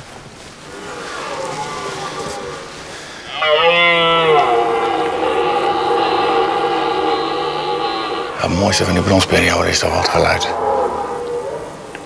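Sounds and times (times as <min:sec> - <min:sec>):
deer stag roaring: 0:00.6 - 0:12.0.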